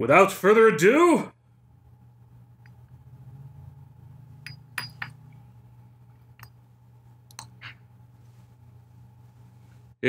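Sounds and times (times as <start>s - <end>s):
glass clinking against flask: 4.5s - 5.2s.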